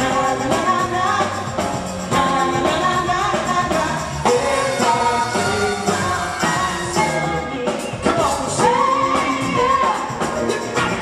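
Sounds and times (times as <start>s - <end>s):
funk and soul band playing: 0.0s - 11.0s.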